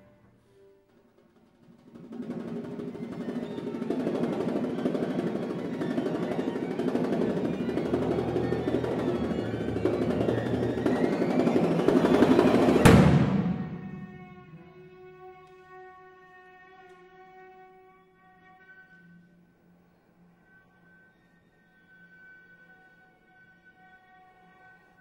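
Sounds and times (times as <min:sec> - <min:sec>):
sharp loud percussion hit: 0:02.2 - 0:14.6
chamber ensemble playing: 0:02.5 - 0:14.6.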